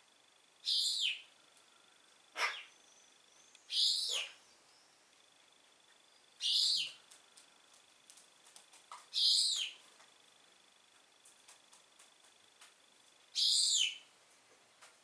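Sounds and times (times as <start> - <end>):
pigeons squeaking calls: 2.4 - 2.7, 3.7 - 4.4.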